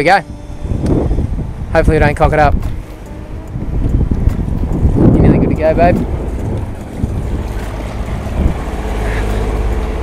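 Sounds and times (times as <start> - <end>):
boat engine drone: 0.0 - 10.0
wind buffeting microphone: 0.0 - 10.0
water washing along hull: 0.3 - 10.0.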